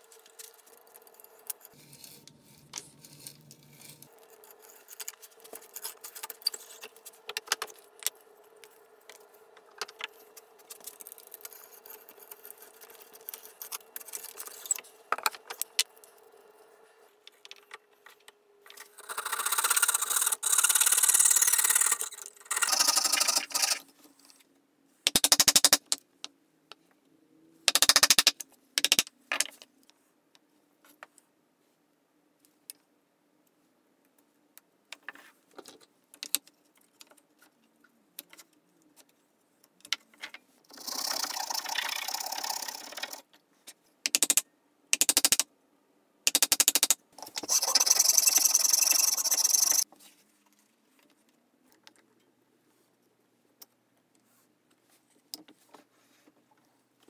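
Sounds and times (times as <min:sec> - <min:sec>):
brace and bit creaking: 0:17.4 - 0:23.9.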